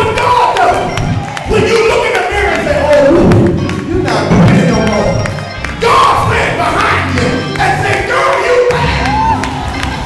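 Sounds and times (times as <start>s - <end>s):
congregation shouting: 0.0s - 3.4s, 5.7s - 10.0s
music: 0.0s - 10.0s.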